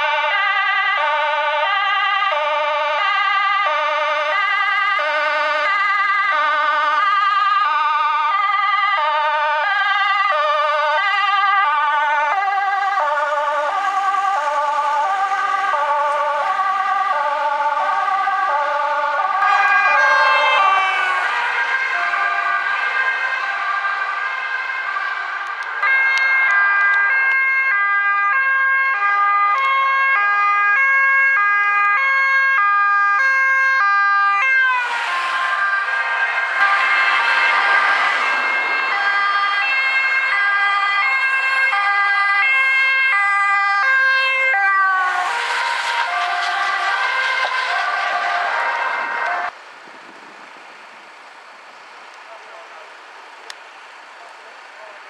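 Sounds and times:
two-tone emergency sirens: 0:00.0 - 0:55.0
vehicle rushing past: 0:34.4 - 0:42.7, 0:44.0 - 0:49.5.

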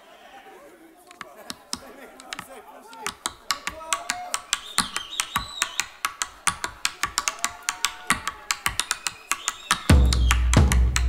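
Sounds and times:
tap shoes striking stage: 0:01.1 - 0:11.0.

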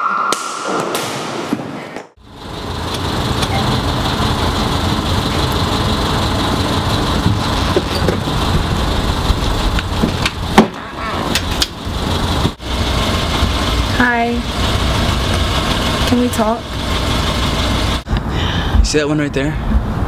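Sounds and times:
low rumble of street ambience: 0:02.2 - 0:20.0.

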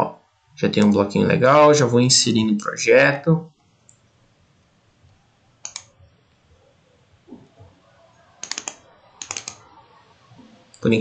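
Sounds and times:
typing on computer keyboard: 0:05.6 - 0:05.9, 0:08.4 - 0:09.7.

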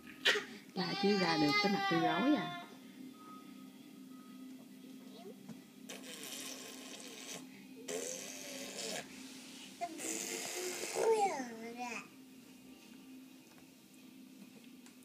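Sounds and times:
baby whimpering and crying: 0:00.2 - 0:02.8, 0:05.9 - 0:09.1, 0:09.8 - 0:12.1.

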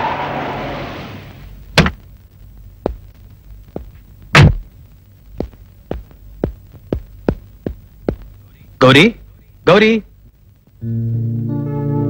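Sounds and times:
faint low hum: 0:00.0 - 0:12.0
footsteps of shoes on hard ground: 0:02.8 - 0:04.7, 0:05.3 - 0:08.5.

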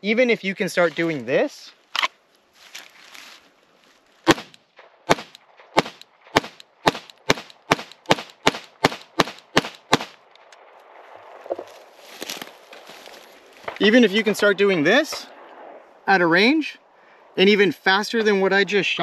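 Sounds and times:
pistol shots: 0:04.3 - 0:10.2.

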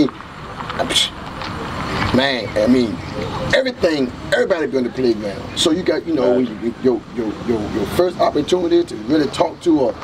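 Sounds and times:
car passing: 0:00.0 - 0:10.0.

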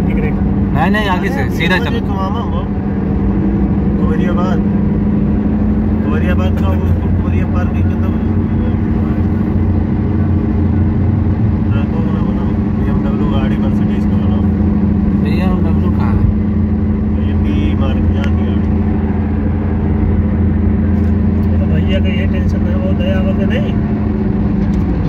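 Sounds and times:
car cabin road noise: 0:00.0 - 0:25.0.

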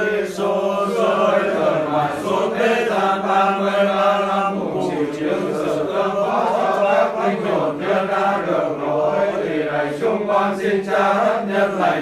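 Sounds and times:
voices chanting a prayer: 0:00.0 - 0:12.0.

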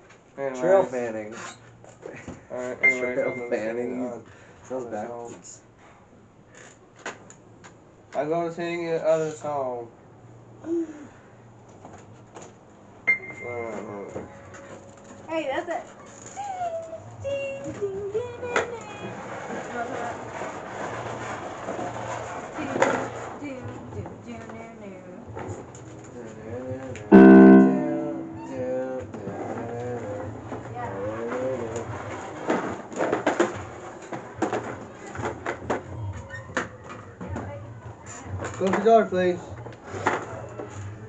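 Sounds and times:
electronic keyboard chord: 0:27.1 - 0:28.6.

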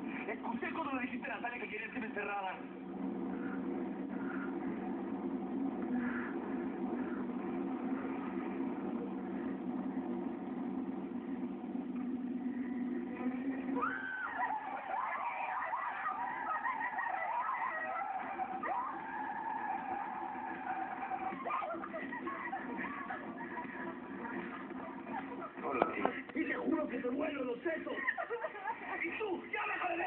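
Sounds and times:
car interior drone: 0:02.7 - 0:25.8
high wavering squeals: 0:12.9 - 0:21.9.

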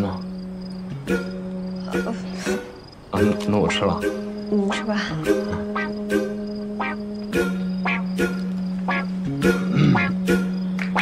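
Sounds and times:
crickets chirping: 0:00.0 - 0:11.0
soft background music: 0:00.0 - 0:11.0.

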